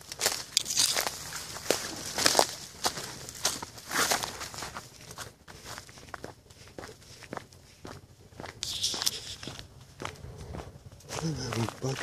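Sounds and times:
footsteps through dry leaves: 0:00.0 - 0:07.3.

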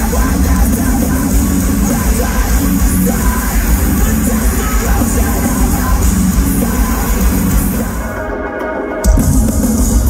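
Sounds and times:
person singing: 0:00.0 - 0:07.6
heavy metal band playing live: 0:00.0 - 0:10.0.

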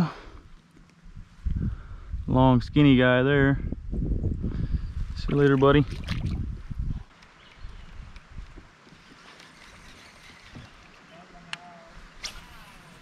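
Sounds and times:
river ambience: 0:05.2 - 0:13.0
faint call: 0:10.4 - 0:13.0.

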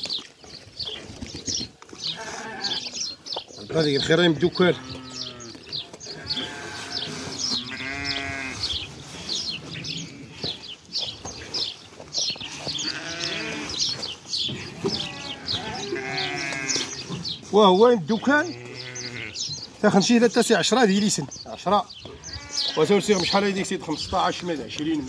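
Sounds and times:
sheep bleating: 0:02.1 - 0:03.0, 0:04.6 - 0:08.7, 0:12.4 - 0:13.8, 0:14.5 - 0:17.0, 0:18.3 - 0:19.4, 0:22.1 - 0:23.4.

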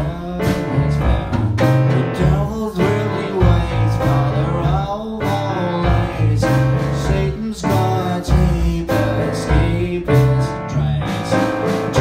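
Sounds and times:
blues piano chords: 0:00.0 - 0:12.0
drum hits: 0:00.0 - 0:12.0
electric bass: 0:00.0 - 0:12.0.

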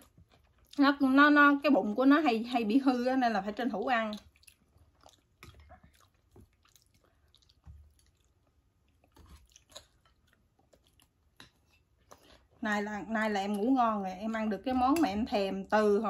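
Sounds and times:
people chewing food: 0:00.0 - 0:01.0, 0:03.6 - 0:12.6.

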